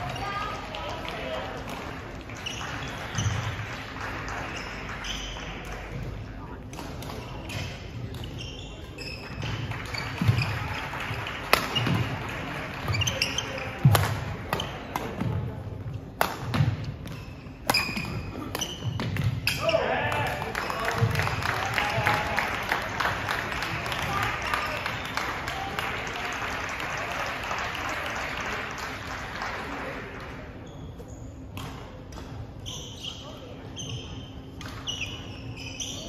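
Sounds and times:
shoes squeaking: 0:07.2 - 0:10.8, 0:11.5 - 0:13.9, 0:17.0 - 0:19.9, 0:32.6 - 0:36.0
racket hitting shuttlecock: 0:11.5 - 0:12.1, 0:16.2 - 0:19.6.

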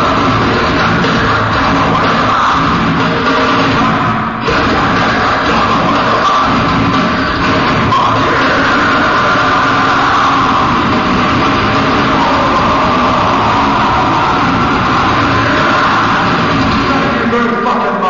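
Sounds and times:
distorted electric guitars: 0:00.0 - 0:18.0
drums: 0:00.0 - 0:18.0.

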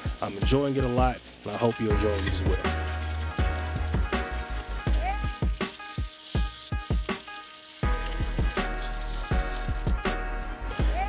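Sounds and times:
background music with steady beat: 0:00.0 - 0:11.0
butter sizzling in a skillet: 0:00.0 - 0:11.0.

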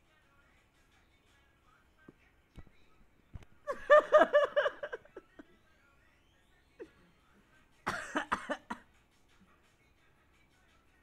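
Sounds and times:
person coughing: 0:07.9 - 0:08.9.

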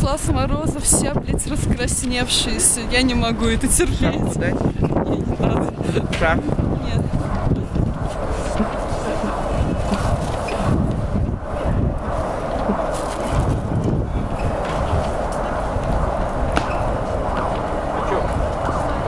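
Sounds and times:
city street rumble: 0:00.0 - 0:19.0
wind buffeting microphone: 0:00.0 - 0:19.0.

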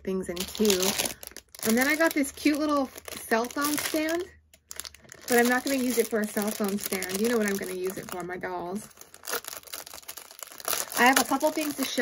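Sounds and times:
plastic packaging crinkling: 0:00.1 - 0:12.0.

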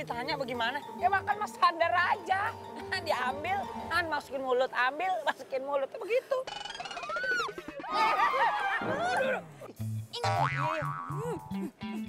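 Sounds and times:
playful comedy music: 0:08.8 - 0:12.0
plucked bass line: 0:09.8 - 0:12.0.

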